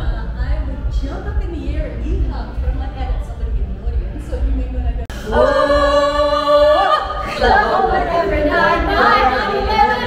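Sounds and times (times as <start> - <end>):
group of singers holding a note: 5.1 - 10.0.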